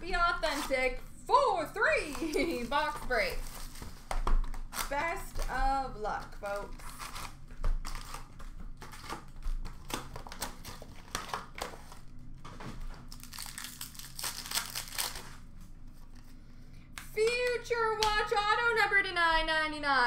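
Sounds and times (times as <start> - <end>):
card pack wrappers crinkling and tearing: 2.0 - 16.3.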